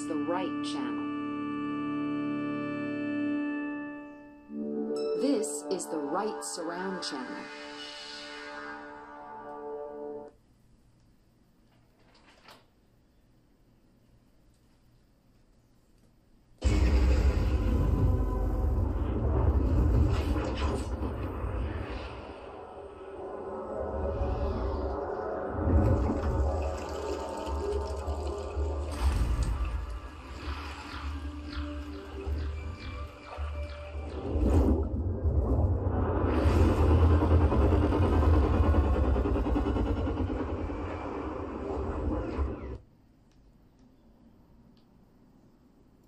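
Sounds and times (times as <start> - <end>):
cinematic music and effects: 0.0 - 10.4, 16.6 - 42.9
deep rumble: 16.6 - 33.1, 34.1 - 42.8
deep bass rumble: 34.2 - 42.6.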